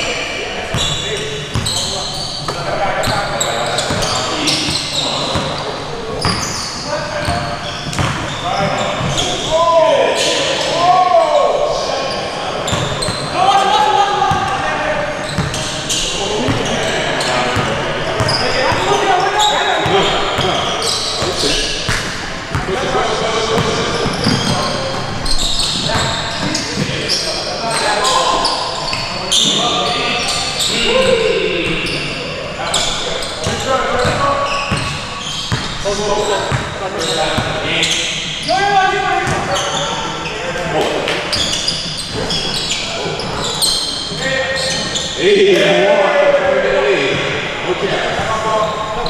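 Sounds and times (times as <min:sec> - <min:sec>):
players calling out: 0:00.0 - 0:49.0
basketball bouncing on gym floor: 0:07.3 - 0:09.2, 0:36.5 - 0:36.8.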